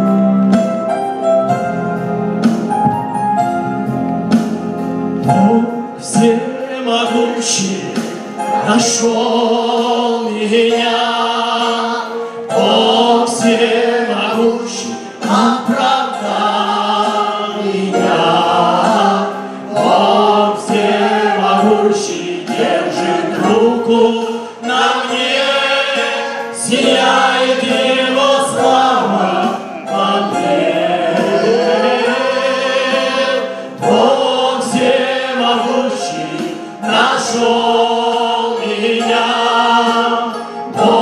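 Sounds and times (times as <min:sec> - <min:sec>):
electronic keyboard accompaniment: 0:00.0 - 0:41.0
group singing worship song: 0:05.3 - 0:41.0.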